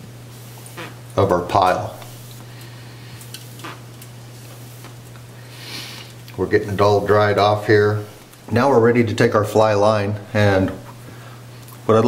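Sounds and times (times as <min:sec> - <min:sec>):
steady low hum: 0:00.0 - 0:12.0
line rubbing through towel: 0:03.4 - 0:05.0.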